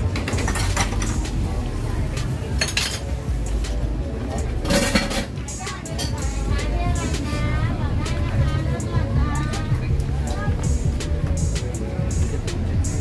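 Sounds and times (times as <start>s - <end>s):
metal utensils and dishes clinking: 0.0s - 1.3s, 2.4s - 3.2s, 4.5s - 6.3s.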